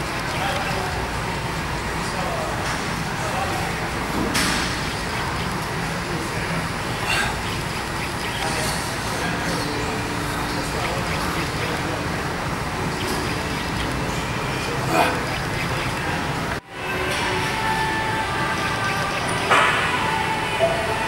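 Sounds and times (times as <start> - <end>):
gym room noise: 0.0 - 21.0
indistinct voices: 0.0 - 21.0.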